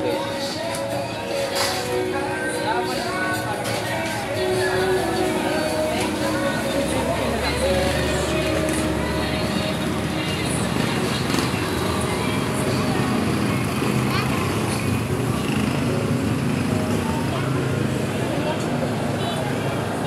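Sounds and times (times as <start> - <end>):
traffic noise: 0.0 - 20.0
voices talking: 0.0 - 20.0.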